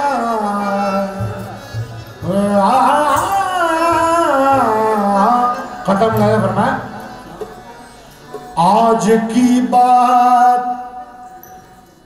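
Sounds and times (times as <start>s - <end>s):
man singing ornamented melody: 0.0s - 7.2s, 8.6s - 11.4s.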